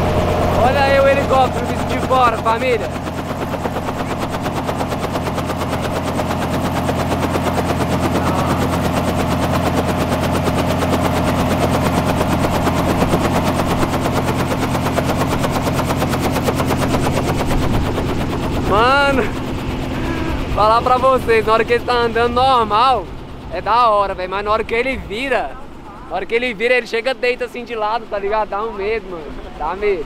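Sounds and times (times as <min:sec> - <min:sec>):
helicopter engine hum: 0:00.0 - 0:30.0
helicopter rotor blade chop: 0:00.0 - 0:30.0.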